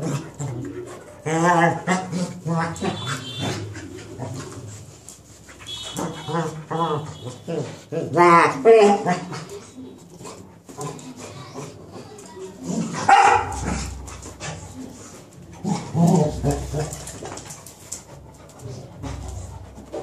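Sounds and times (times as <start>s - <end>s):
dogs barking and snarling: 0.0s - 20.0s
dogs scuffling: 0.0s - 20.0s
dog barking: 13.0s - 13.8s.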